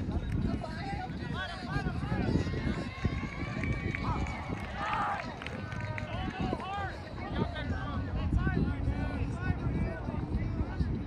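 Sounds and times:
wind buffeting the microphone: 0.0 - 11.0.

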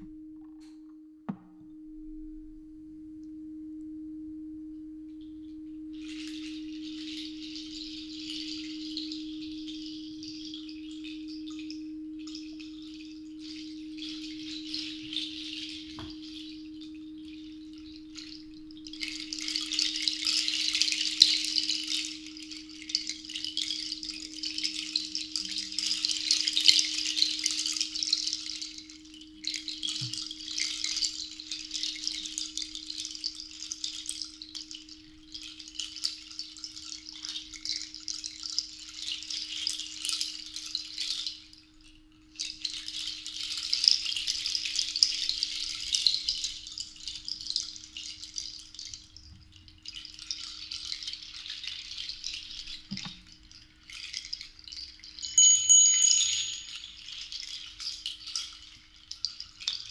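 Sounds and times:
crystal singing bowl ringing: 0.1 - 38.2, 55.2 - 57.7
seed-pod rattle shaken: 18.2 - 29.0, 29.6 - 41.5, 42.6 - 59.9.

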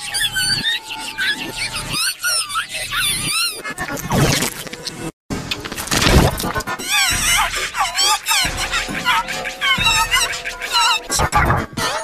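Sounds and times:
processed high squealing sobs: 0.0 - 4.4, 6.6 - 12.0.

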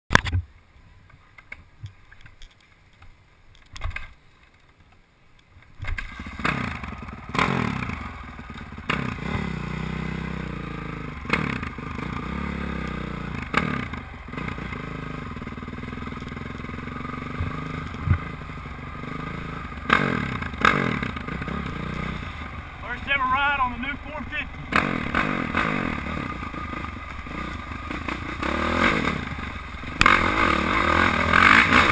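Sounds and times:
dirt bike engine revving: 6.0 - 31.9.

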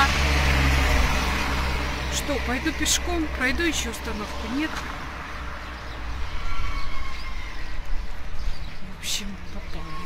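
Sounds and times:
car driving past: 0.0 - 8.2.

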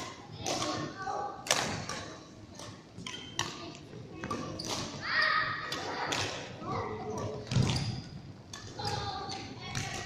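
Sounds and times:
rackets hitting shuttlecocks: 0.0 - 6.6.

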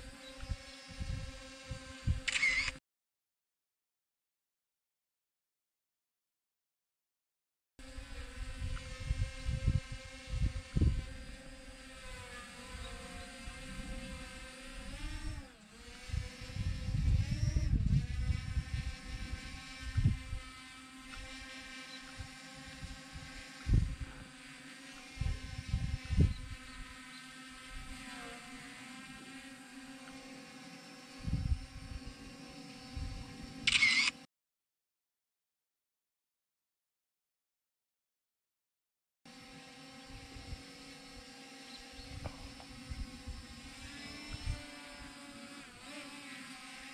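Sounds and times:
drone propellers whining: 2.0 - 2.8, 29.1 - 34.2, 39.9 - 46.2
wind buffeting microphone: 8.4 - 11.3, 16.0 - 20.4, 22.8 - 24.2, 25.2 - 26.6, 31.2 - 32.1.

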